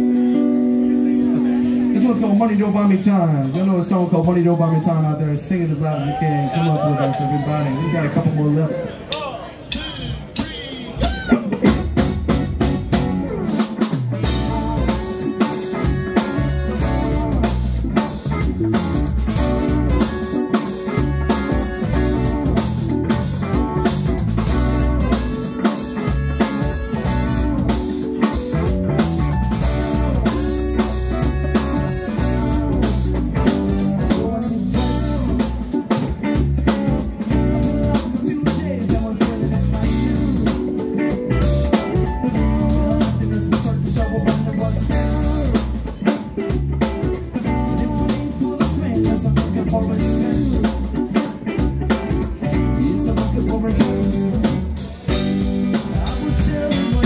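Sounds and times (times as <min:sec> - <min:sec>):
funk band playing: 0:00.0 - 0:57.0.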